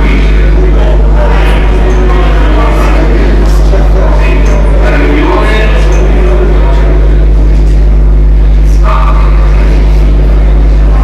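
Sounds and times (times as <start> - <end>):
loud steady low hum: 0.0 - 11.0
muffled voices: 0.0 - 11.0.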